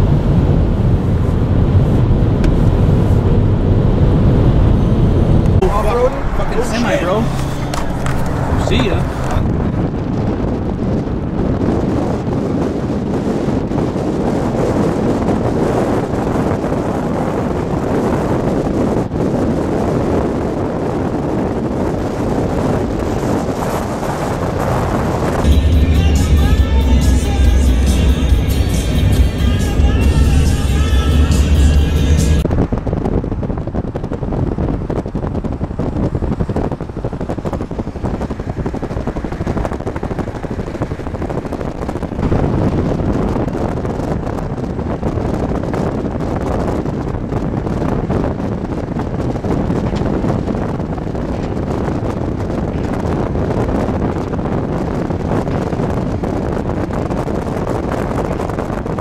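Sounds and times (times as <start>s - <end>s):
vehicle road and wind noise: 0.0s - 59.0s
loud bass-heavy music with voice: 25.5s - 32.4s.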